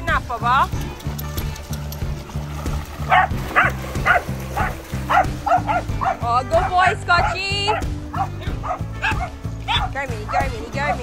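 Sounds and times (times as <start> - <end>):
background music with bass line: 0.0 - 11.0
dog barking: 3.1 - 11.0.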